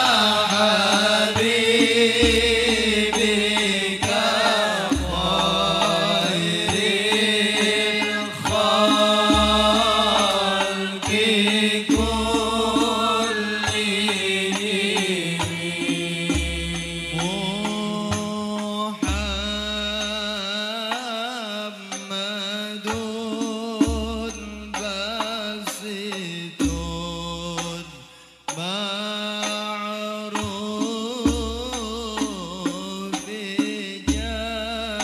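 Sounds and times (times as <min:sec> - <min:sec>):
frame drums: 0:00.0 - 0:22.1, 0:22.8 - 0:28.7, 0:29.4 - 0:35.0
men singing in unison: 0:00.0 - 0:35.0.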